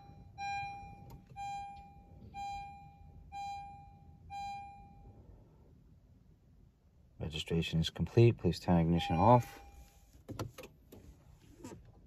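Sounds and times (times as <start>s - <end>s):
car electronic chime beeping: 0.0s - 5.3s, 8.8s - 10.1s.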